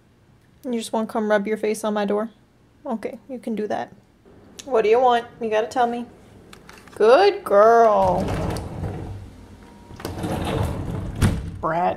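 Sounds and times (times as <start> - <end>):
sliding glass door rumble: 4.3 - 11.7.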